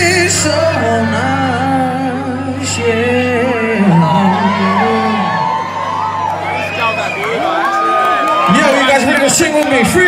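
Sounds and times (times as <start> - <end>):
crowd cheering and whooping: 3.4 - 10.0.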